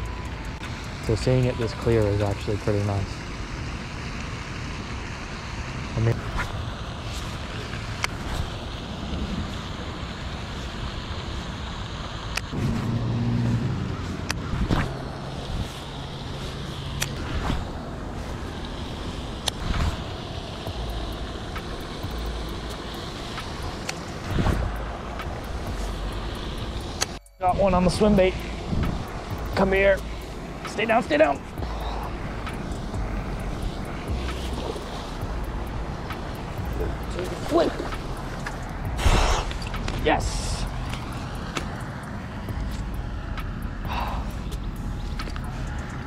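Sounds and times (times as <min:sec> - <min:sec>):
low outdoor rumble: 0:00.0 - 0:46.0.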